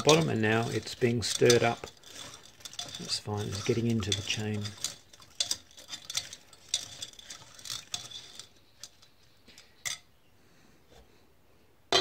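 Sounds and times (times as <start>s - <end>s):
bicycle chain clinking in pot: 0.0s - 10.1s.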